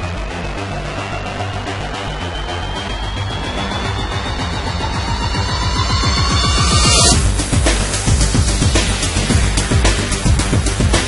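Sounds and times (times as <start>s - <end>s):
electronic music with steady beat: 0.0s - 11.0s
rising tone: 1.1s - 8.6s.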